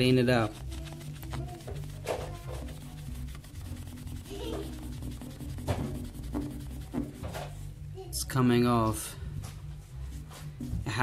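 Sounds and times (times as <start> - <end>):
wet wipe scrubbing metal radiator: 0.3 - 7.4.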